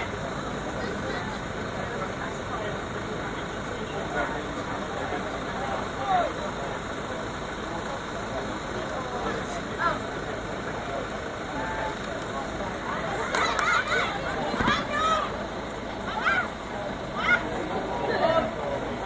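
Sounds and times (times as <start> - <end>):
distant shouts of players: 13.0 - 18.6.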